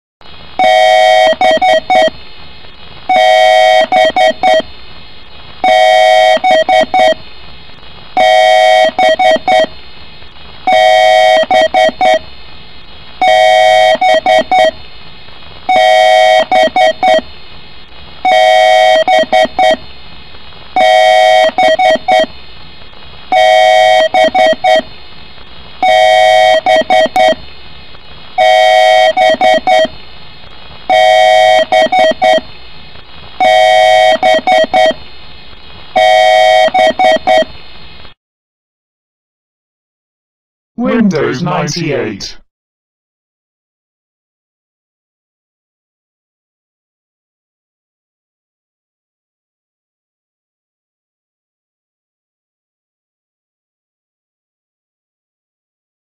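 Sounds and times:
computer bios beeps: 0.6s - 2.1s, 3.1s - 4.6s, 8.2s - 9.7s, 34.2s - 35.0s.

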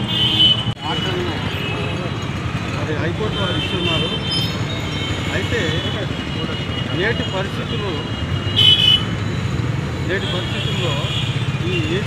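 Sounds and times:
street traffic rumble: 0.0s - 12.0s
men talking: 0.8s - 8.4s, 9.9s - 12.0s.

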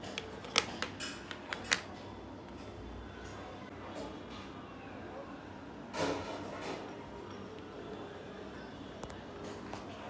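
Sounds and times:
plastic units clicking on table: 0.0s - 1.9s.

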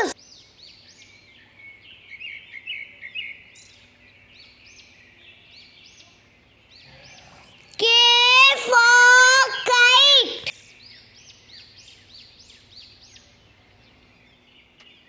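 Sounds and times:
faint bird chirps: 0.0s - 9.8s, 10.5s - 15.0s.

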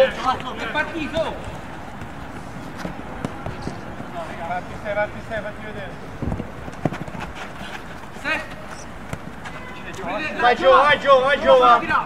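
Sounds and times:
players shouting calls: 0.0s - 6.1s, 6.8s - 12.0s
running footsteps on turf: 0.0s - 10.4s
ball being kicked: 2.8s - 3.8s, 9.0s - 9.6s.

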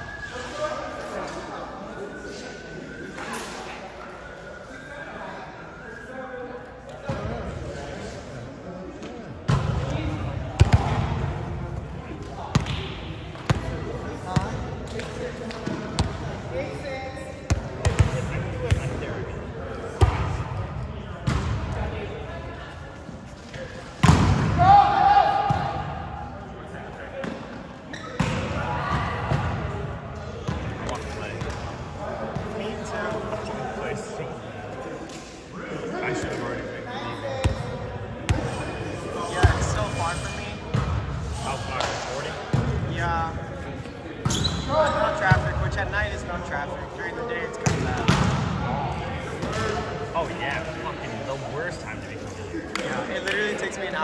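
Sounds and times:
volleyball slaps echoing: 9.4s - 11.2s, 12.2s - 16.2s, 24.0s - 26.0s, 28.2s - 29.7s, 47.6s - 50.0s.

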